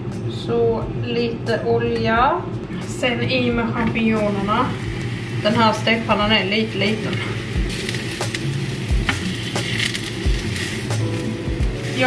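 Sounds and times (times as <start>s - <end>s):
mushrooms sizzling in hot oil: 3.4s - 12.0s.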